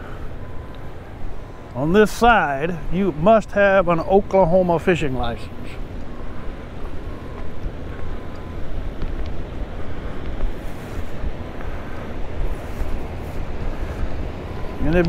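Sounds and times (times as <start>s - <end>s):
wind buffeting microphone: 5.3s - 15.0s.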